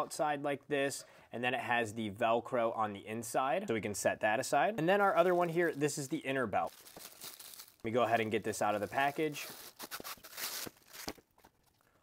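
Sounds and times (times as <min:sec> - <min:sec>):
plastic wrapping crinkling: 0:05.0 - 0:11.8.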